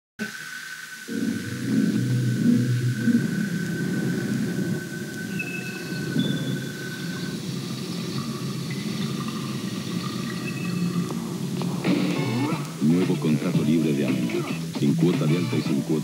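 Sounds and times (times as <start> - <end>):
low rumbling drone: 1.0 - 14.8.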